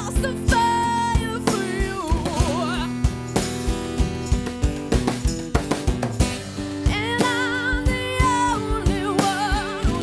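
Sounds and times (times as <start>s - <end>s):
woman singing with vibrato: 0.0s - 3.0s, 6.8s - 10.0s
acoustic guitar strumming: 0.0s - 10.0s
drum beat: 0.5s - 10.0s.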